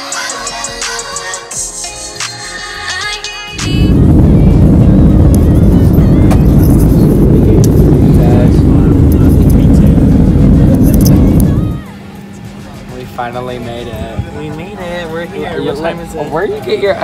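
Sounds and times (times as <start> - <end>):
airliner cabin jet roar: 3.5 - 17.0.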